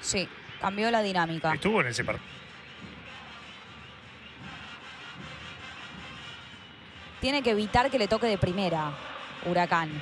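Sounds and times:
crowd singing and chanting: 0:00.0 - 0:10.0.

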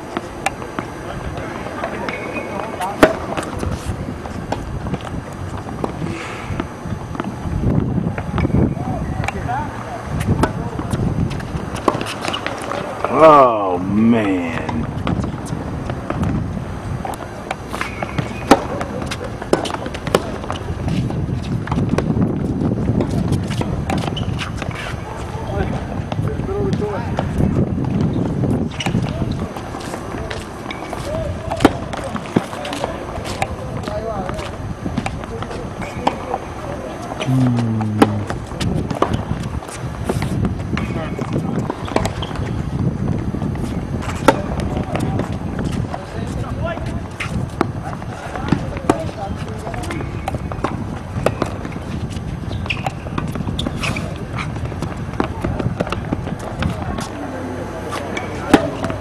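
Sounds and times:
background voices talking: 0:00.0 - 0:16.0, 0:28.2 - 0:39.5, 0:53.8 - 0:59.0
tennis balls struck by rackets: 0:00.1 - 0:03.8, 0:17.0 - 0:21.0, 0:37.2 - 0:39.3, 0:57.9 - 0:59.0
tennis balls bouncing on court: 0:00.1 - 0:07.4, 0:10.3 - 0:13.2, 0:17.0 - 0:24.9, 0:37.2 - 0:42.9, 0:46.8 - 0:57.2, 0:57.9 - 0:59.0
loud call: 0:37.3 - 0:38.4.

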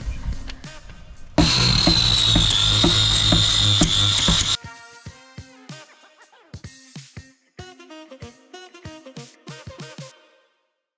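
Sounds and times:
background music: 0:00.3 - 0:10.8
orbital sander whining: 0:01.4 - 0:04.6.

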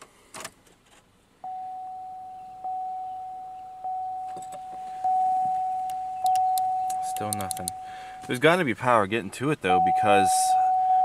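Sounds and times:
car warning chime dinging: 0:01.4 - 0:08.6, 0:09.7 - 0:11.0.

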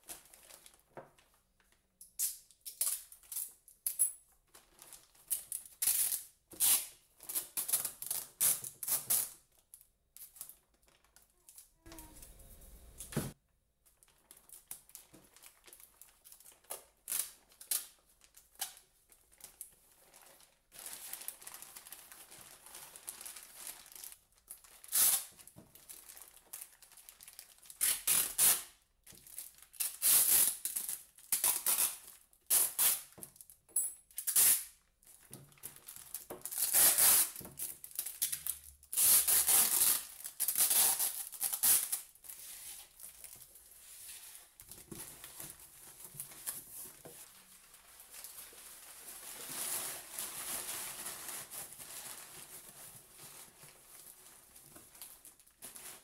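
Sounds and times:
crumpled paper rustling: 0:00.0 - 0:01.8, 0:04.4 - 0:05.8, 0:07.2 - 0:28.1, 0:35.0 - 0:56.0
packing tape screeching off roll: 0:05.8 - 0:09.4, 0:24.8 - 0:25.4, 0:27.6 - 0:28.7, 0:29.7 - 0:33.2, 0:34.2 - 0:34.8, 0:36.4 - 0:37.4, 0:38.9 - 0:42.1
plastic bag crinkling: 0:07.2 - 0:13.1, 0:13.8 - 0:28.4, 0:35.0 - 0:56.0.

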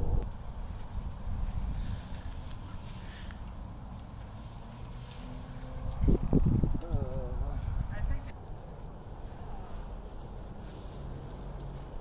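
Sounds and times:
wind buffeting microphone: 0:00.0 - 0:02.9, 0:05.8 - 0:08.6.

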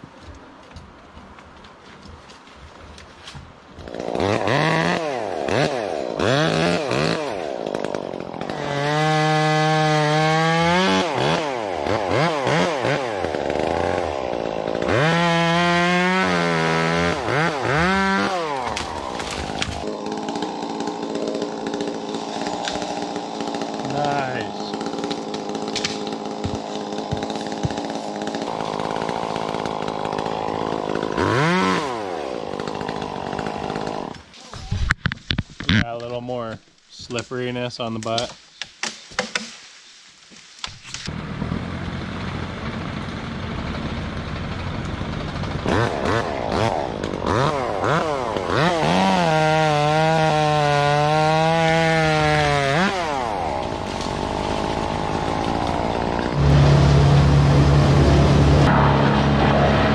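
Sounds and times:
chainsaw revving: 0:03.8 - 0:34.3, 0:41.1 - 0:59.9.

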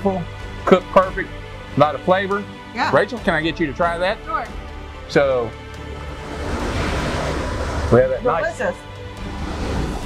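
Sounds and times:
storm wind rushing: 0:05.9 - 0:08.2.

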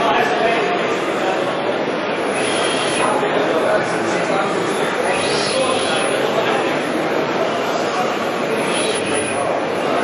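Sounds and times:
murmur of crowd voices: 0:00.0 - 0:10.0
machinery running: 0:02.2 - 0:03.8, 0:04.8 - 0:07.0, 0:08.3 - 0:09.9.

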